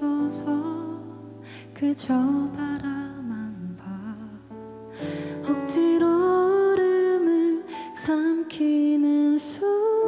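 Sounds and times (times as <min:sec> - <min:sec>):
woman singing: 0:00.0 - 0:04.6, 0:05.3 - 0:10.0.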